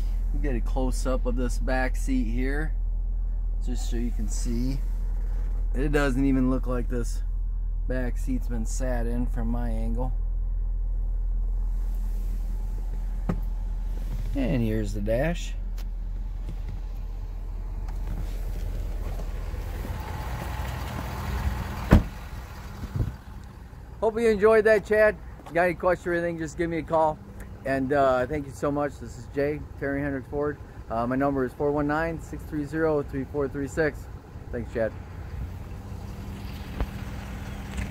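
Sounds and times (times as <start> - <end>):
low hum inside truck cab: 0.0 - 37.9
truck door slamming: 13.2 - 14.3, 21.0 - 23.2
wind rumble on microphone: 22.8 - 23.3.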